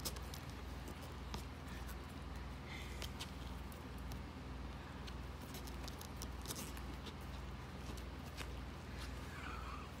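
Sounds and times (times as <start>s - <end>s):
low steady hum: 0.0s - 10.0s
faint clicks and scratches: 5.0s - 9.2s.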